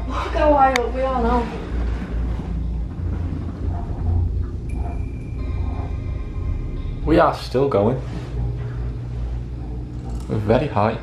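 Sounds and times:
background music with held tones: 0.0 - 11.0
cable car cabin rumble: 0.0 - 11.0.

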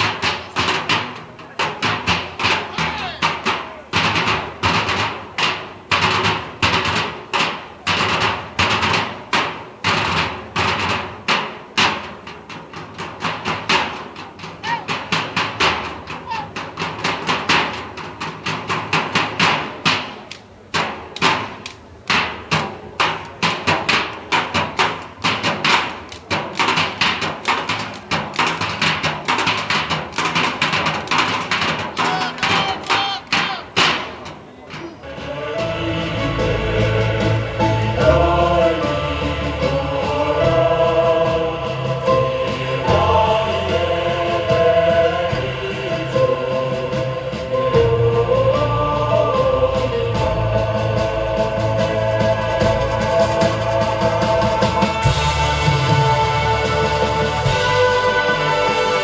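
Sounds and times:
barrel drums beating: 0.0 - 59.0.

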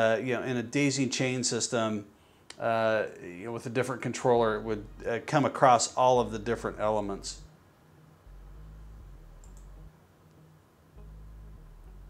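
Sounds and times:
low hum: 4.3 - 5.3, 6.1 - 12.0
faint computer mouse click: 9.4 - 9.7.

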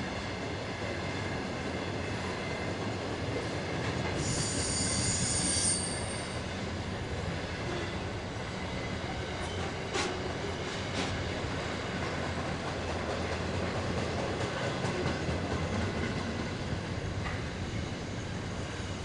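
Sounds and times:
train wheels rumbling on rail: 0.0 - 19.0
high-pitched wheel squeal: 4.2 - 6.4.

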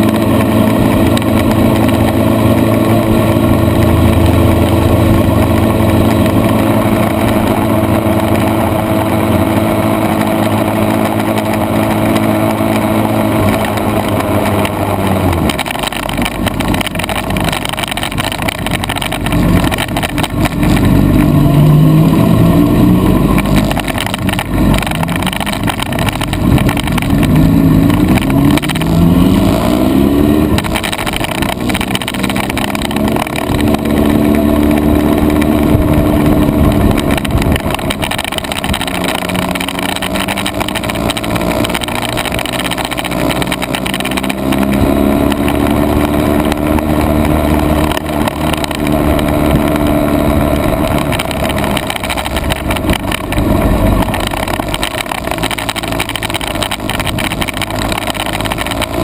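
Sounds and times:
motorcycle engine accelerating: 0.0 - 59.0
wind and road noise: 0.0 - 59.0.

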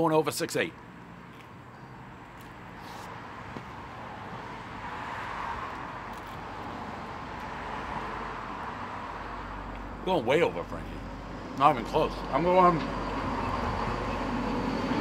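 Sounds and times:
road traffic hiss: 0.2 - 15.0.

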